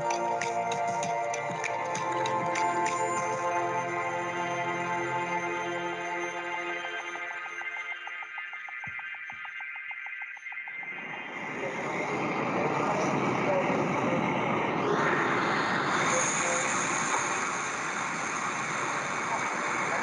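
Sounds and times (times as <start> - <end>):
music with fast pulsing tone: 0.0 - 20.0.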